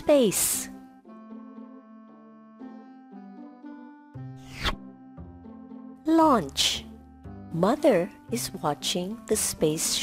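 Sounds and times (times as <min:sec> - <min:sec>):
soft keyboard background music: 0:00.0 - 0:10.0.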